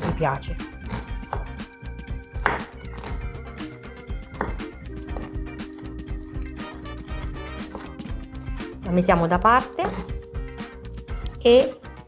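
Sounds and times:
knife chopping on wooden board: 0.0s - 1.7s, 2.3s - 8.2s, 9.6s - 10.2s
background music: 0.0s - 12.0s.

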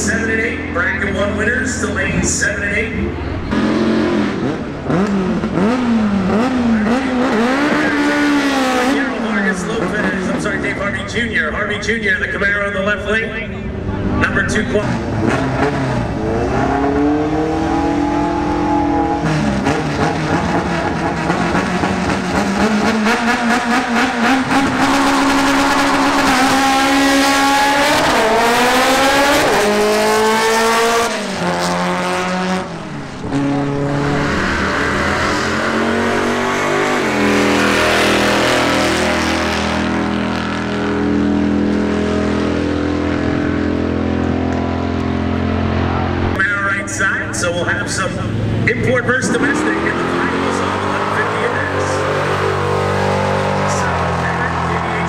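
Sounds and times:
drag car engines revving: 0.0s - 55.0s.

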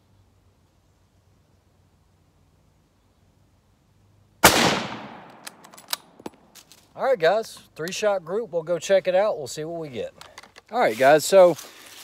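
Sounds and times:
rifle shot echoing: 4.4s - 5.8s.

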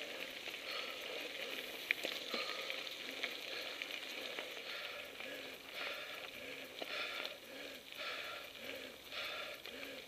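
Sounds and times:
bike tyres crunching on gravel: 0.0s - 10.0s.

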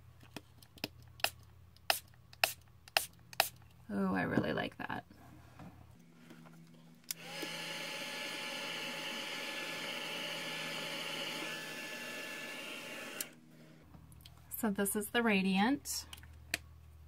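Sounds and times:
electric blower motor whirring: 7.0s - 13.5s.

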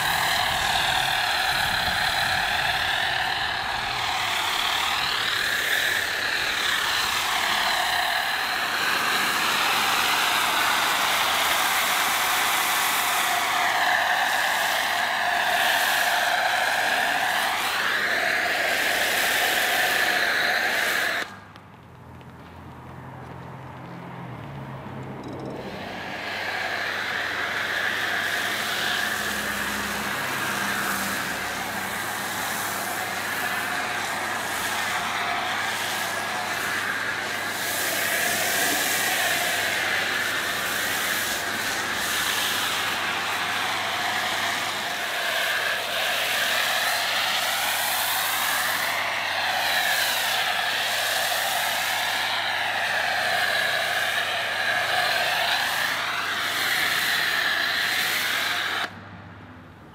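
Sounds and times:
pressure washer foam spraying: 0.0s - 21.8s, 25.6s - 59.0s.

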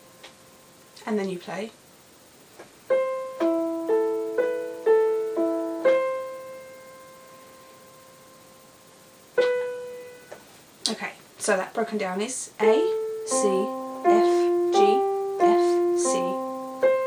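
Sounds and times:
slow piano melody: 2.9s - 10.4s, 12.6s - 17.0s.

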